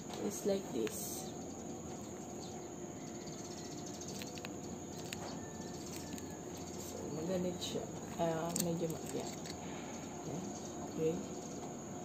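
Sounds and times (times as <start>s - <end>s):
steady background hiss: 0.0s - 12.0s
metal clasp clicks: 8.3s - 9.6s.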